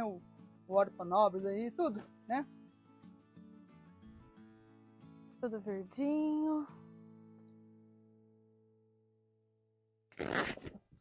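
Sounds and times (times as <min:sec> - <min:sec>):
acoustic guitar music: 0:00.0 - 0:08.9.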